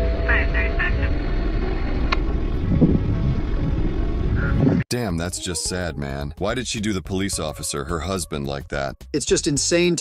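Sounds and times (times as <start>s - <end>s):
car engine and tyre rumble: 0.0s - 4.8s.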